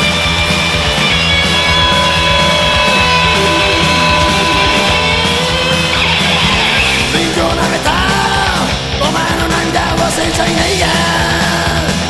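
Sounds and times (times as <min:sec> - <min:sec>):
bass and drums: 0:00.0 - 0:12.0
distorted electric guitar: 0:00.0 - 0:12.0.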